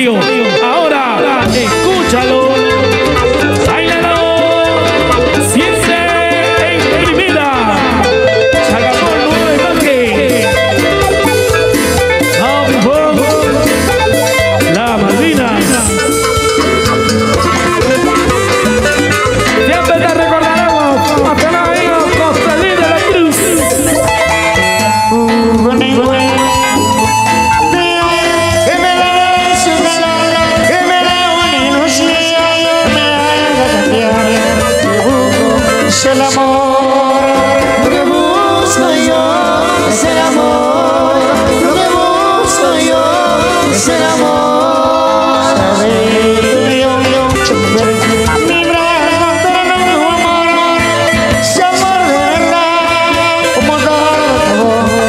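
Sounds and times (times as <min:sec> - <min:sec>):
cumbia band music: 0:00.0 - 0:55.0.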